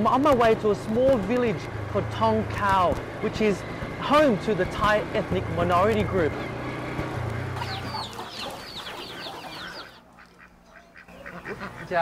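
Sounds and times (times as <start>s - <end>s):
small motorbike engine hum: 0.0s - 10.0s
small birds chirping: 2.2s - 12.0s.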